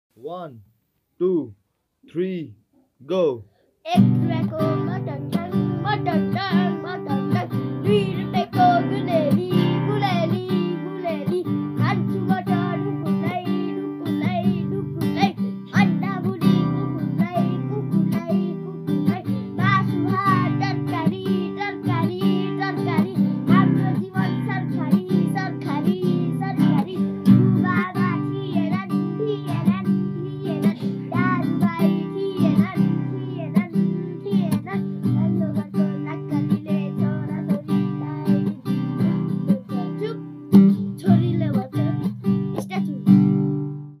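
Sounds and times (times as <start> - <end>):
young boy singing: 3.8 - 43.2
strummed acoustic guitar: 3.9 - 44.0.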